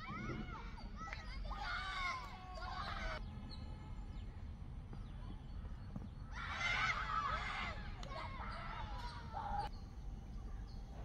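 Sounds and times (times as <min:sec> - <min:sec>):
children shouting together: 0:00.0 - 0:03.2, 0:06.3 - 0:09.7.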